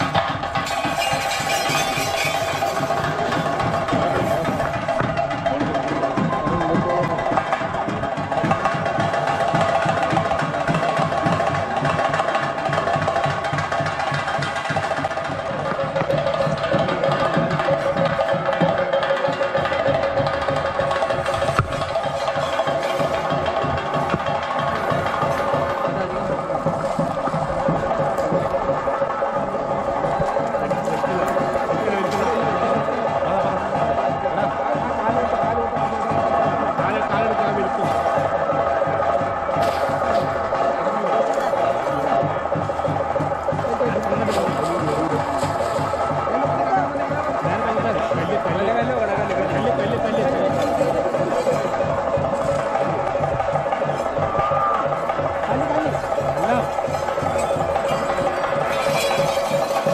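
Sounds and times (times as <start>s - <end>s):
drums beaten in fast strokes: 0.0s - 59.9s
steady ringing layer: 0.0s - 59.9s.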